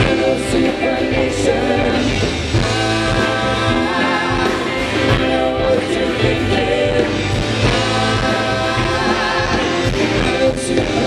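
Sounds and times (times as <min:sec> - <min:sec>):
live rock band playing: 0:00.0 - 0:11.0
person singing: 0:00.0 - 0:11.0.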